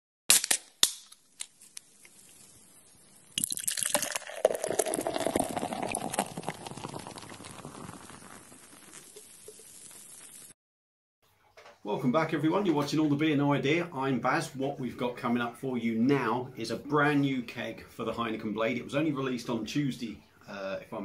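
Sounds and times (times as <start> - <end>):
sharp clicks and pops: 0.3 - 2.6
beer pouring into a glass: 3.3 - 10.5.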